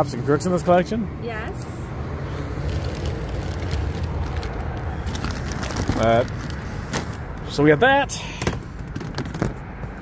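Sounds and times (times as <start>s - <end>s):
plastic bags crinkling: 2.6s - 7.2s.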